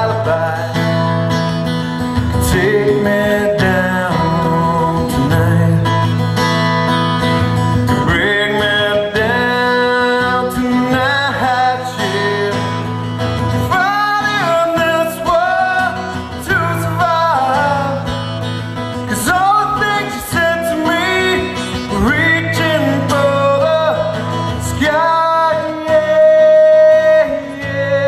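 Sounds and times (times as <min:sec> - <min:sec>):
man singing: 0:00.0 - 0:06.5, 0:07.9 - 0:28.0
strummed acoustic guitar: 0:00.0 - 0:28.0.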